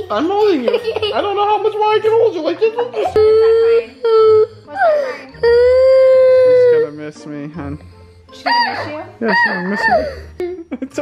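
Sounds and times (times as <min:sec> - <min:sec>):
toddler crying in wails: 0:03.0 - 0:06.8.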